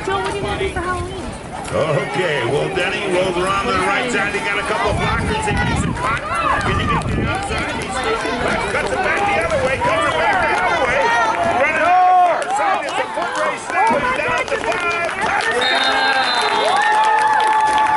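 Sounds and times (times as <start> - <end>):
spectators shouting and cheering: 1.5 - 17.9.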